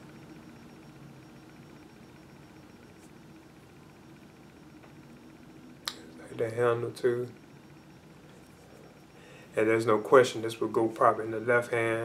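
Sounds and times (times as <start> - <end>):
faint steady hum and hiss: 0.0 - 12.0.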